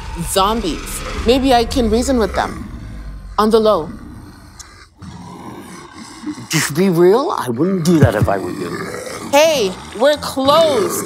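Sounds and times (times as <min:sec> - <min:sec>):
low rough growling voice: 0:00.6 - 0:11.0.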